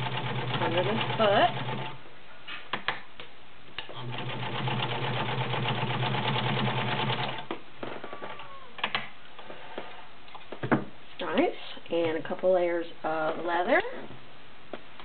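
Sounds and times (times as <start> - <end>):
sewing machine stitching: 0.0 - 2.0, 3.9 - 7.4.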